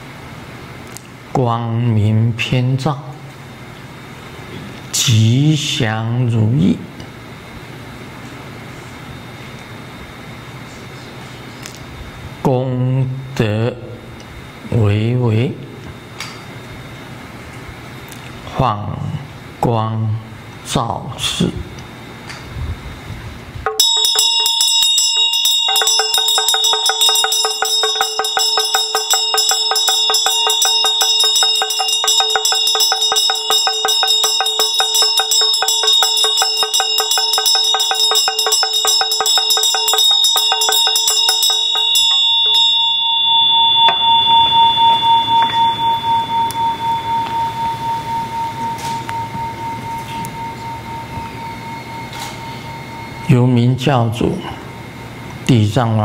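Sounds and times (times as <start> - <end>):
hand drum rattling: 23.7 - 53.2
bell ringing: 23.7 - 54.0.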